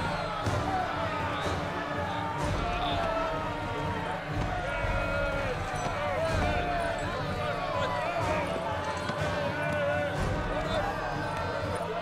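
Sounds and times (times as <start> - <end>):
crowd clamouring: 0.0 - 12.0.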